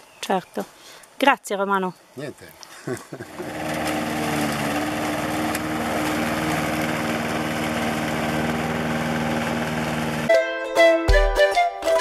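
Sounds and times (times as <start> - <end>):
lawn mower running: 3.2 - 10.4.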